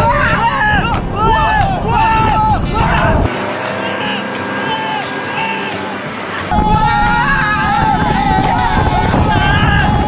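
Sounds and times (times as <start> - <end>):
faint shouting: 0.0 - 10.0
people screaming: 0.0 - 10.0
motorboat engine running: 0.9 - 10.0.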